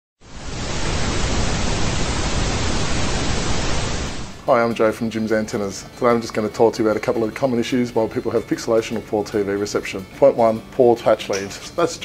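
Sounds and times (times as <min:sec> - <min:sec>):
television static hiss: 0:00.2 - 0:04.7.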